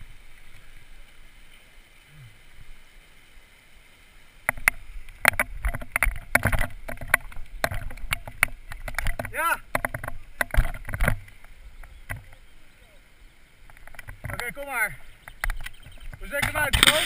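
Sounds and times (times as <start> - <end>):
faint steady hiss: 0.0 - 17.0
bike knocks and clatters: 4.5 - 11.2.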